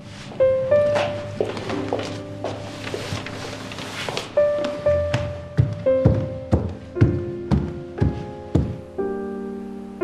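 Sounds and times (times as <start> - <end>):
held piano notes stepping downward: 0.0 - 10.0.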